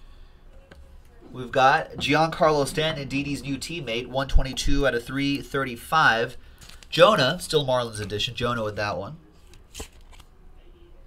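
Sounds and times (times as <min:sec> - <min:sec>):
trading cards rustling: 0:06.5 - 0:06.9, 0:09.4 - 0:10.3.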